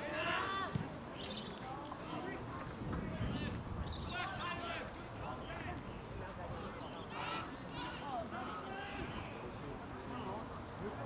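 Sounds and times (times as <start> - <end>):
wind rumble on microphone: 2.5 - 6.8.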